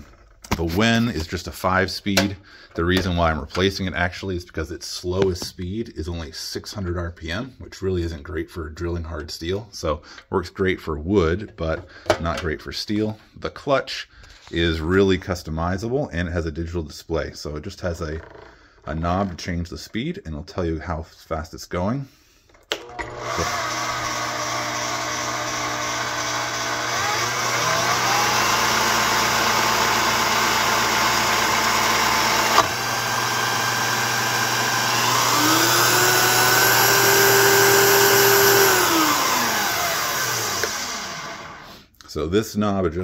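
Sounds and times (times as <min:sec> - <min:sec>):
drill press motor gear whine: 0:22.8 - 0:41.6.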